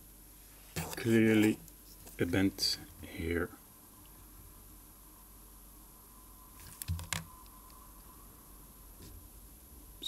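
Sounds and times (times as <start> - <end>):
faint high hum: 0.0 - 10.0.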